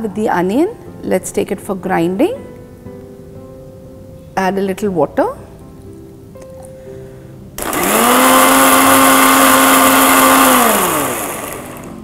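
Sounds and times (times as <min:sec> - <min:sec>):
mixer grinder motor whine: 0:07.6 - 0:12.0.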